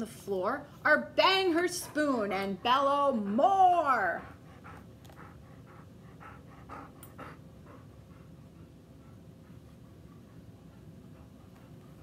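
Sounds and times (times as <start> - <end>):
dog panting: 1.3 - 12.0.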